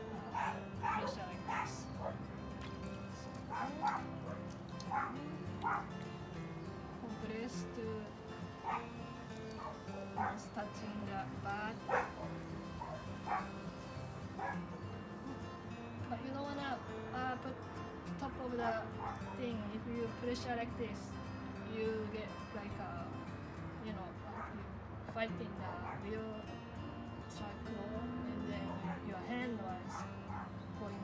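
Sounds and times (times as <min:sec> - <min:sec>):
dog whining: 0:00.2 - 0:02.2, 0:03.4 - 0:05.9, 0:08.6 - 0:08.9, 0:11.9 - 0:13.5, 0:14.4 - 0:14.8
dog barking and yipping: 0:00.2 - 0:02.3, 0:03.4 - 0:06.0, 0:08.6 - 0:10.5, 0:11.9 - 0:14.8, 0:19.0 - 0:19.4, 0:28.7 - 0:29.1, 0:29.8 - 0:30.6.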